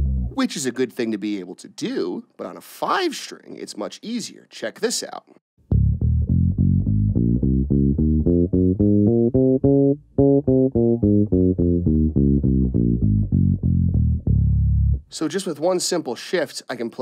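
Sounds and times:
electric bass playing a scale: 0:00.0 - 0:00.4, 0:05.7 - 0:15.1.

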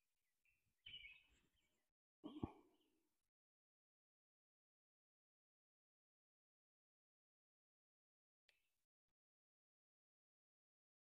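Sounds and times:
faint bird chirps: 0:00.4 - 0:03.0.

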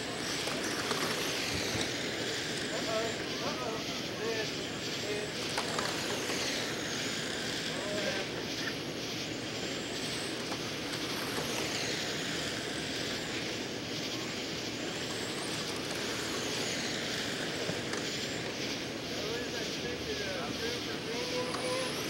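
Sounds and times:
high whines of passing cars: 0:00.0 - 0:22.0
rc car motor whine: 0:00.0 - 0:22.0.

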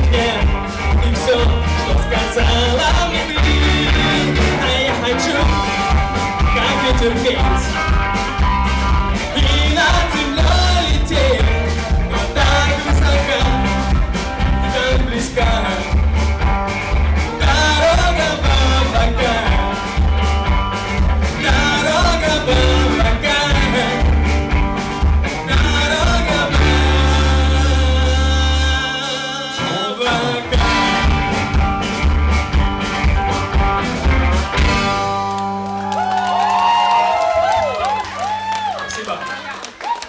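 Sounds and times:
person singing: 0:00.0 - 0:08.0, 0:09.2 - 0:16.1, 0:17.2 - 0:20.0, 0:21.2 - 0:24.3, 0:25.3 - 0:31.2
rock band playing: 0:00.0 - 0:39.0.

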